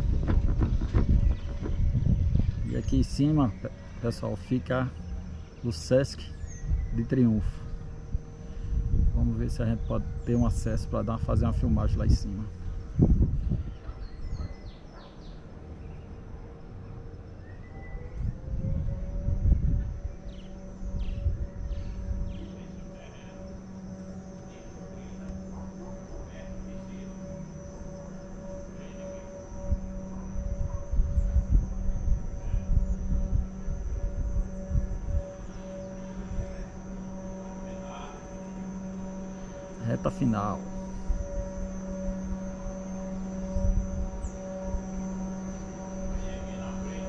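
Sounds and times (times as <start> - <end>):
wind rumble on microphone: 0.0 - 16.5, 17.5 - 47.0
machinery hum: 0.0 - 47.0
bird chirps: 0.1 - 8.5, 9.4 - 47.0.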